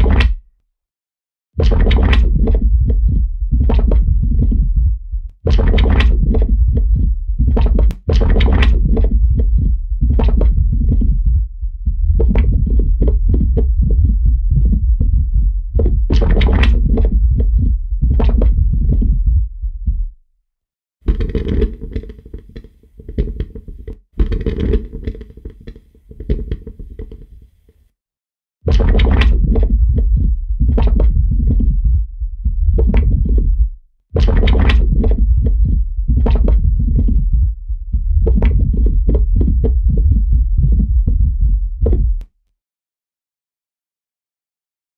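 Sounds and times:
low bass rumble: 0:01.6 - 0:20.2, 0:28.7 - 0:42.2.

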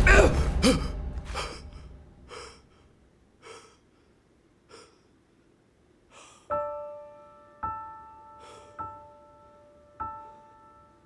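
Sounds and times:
man breathing hard: 0:00.3 - 0:05.2, 0:06.1 - 0:06.6, 0:08.3 - 0:08.8
soft piano notes: 0:06.5 - 0:11.0.

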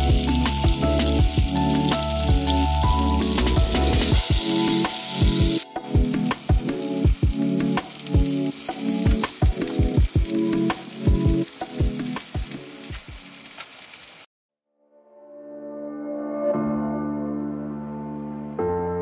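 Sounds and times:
background music with steady beat: 0:00.0 - 0:13.2
food sizzling in a frying pan: 0:00.0 - 0:14.3.

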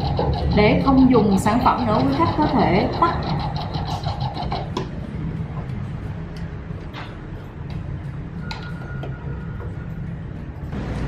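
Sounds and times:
water flosser pump pulsing: 0:00.0 - 0:04.8
steady low hum: 0:00.0 - 0:08.6.

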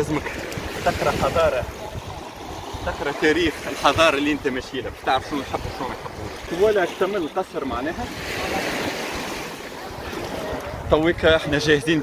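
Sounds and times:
sea surf washing onto beach: 0:00.0 - 0:12.0.

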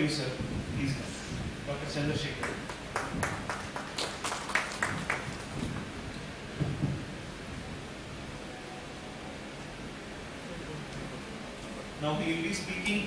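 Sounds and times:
small audience clapping: 0:02.3 - 0:05.8
low bumps: 0:04.9 - 0:07.3.

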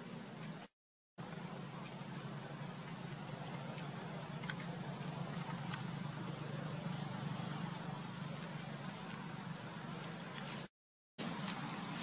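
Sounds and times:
low hum: 0:01.2 - 0:10.7.

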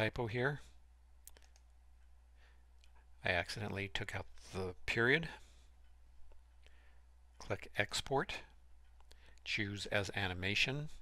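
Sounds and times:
low steady hum: 0:00.0 - 0:11.0
computer mouse clicks: 0:01.2 - 0:01.7.

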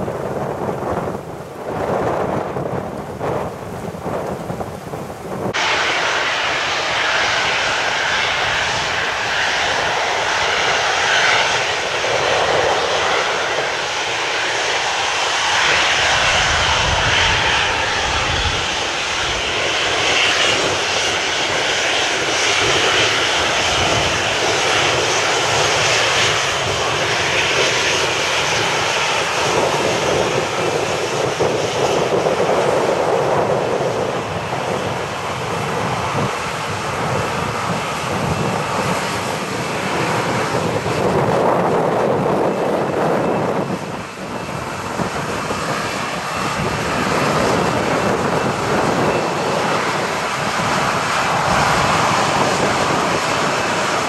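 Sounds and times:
jet engines roaring: 0:00.0 - 0:54.0.

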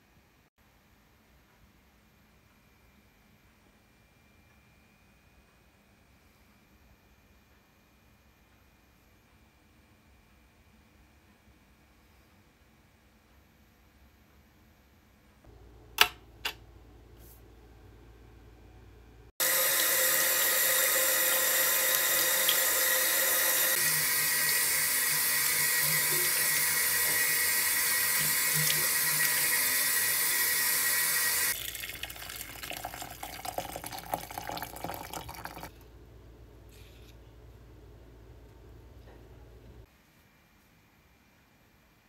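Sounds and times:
tap running into washbasin: 0:19.4 - 0:35.7
water pouring from kettle: 0:19.4 - 0:35.7.

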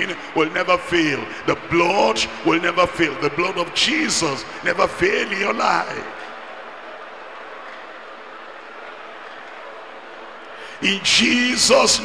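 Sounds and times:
congregation praying aloud: 0:00.0 - 0:07.8, 0:10.2 - 0:12.0.

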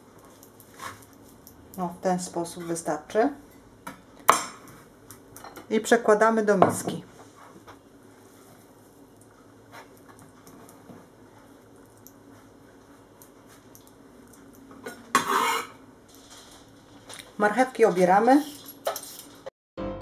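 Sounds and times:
scrape on wooden board: 0:15.2 - 0:15.7.

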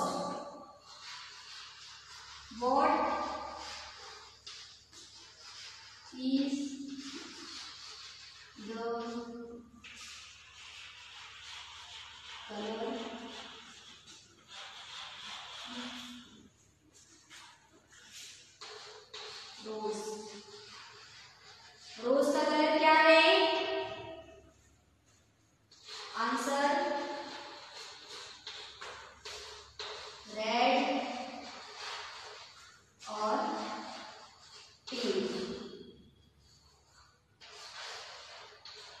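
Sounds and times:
chalk scratching on blackboard: 0:00.0 - 0:39.0.

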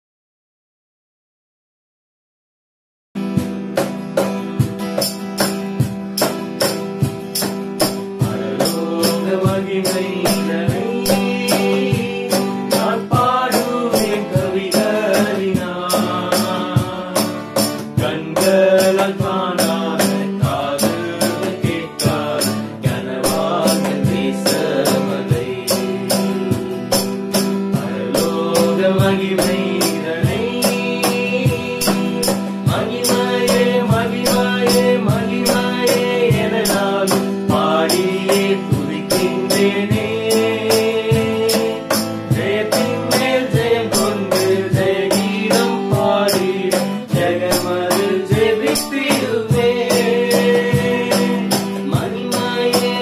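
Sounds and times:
cajon and hand percussion: 0:03.2 - 0:53.0
strummed acoustic guitar: 0:03.2 - 0:53.0
men singing: 0:07.4 - 0:53.0.

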